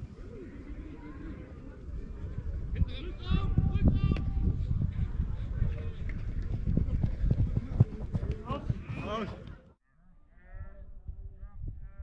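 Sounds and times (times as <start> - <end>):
wind rumble on microphone: 0.0 - 9.0, 10.3 - 12.0.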